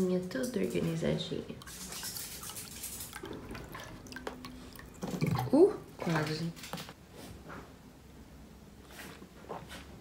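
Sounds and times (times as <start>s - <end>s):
water filling a glass: 1.6s - 6.0s.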